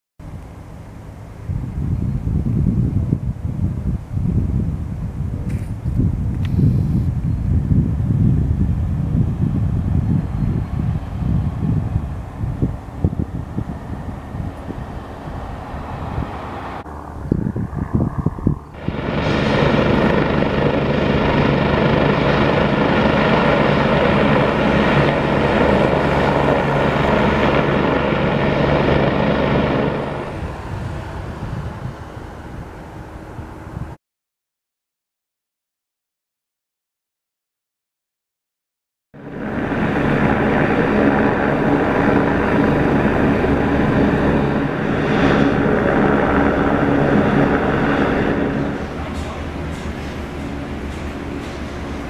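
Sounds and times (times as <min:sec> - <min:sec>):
helicopter turbines and rotor: 0:00.2 - 0:34.0, 0:39.2 - 0:52.0
wind buffeting microphone: 0:01.0 - 0:34.0, 0:39.2 - 0:52.0.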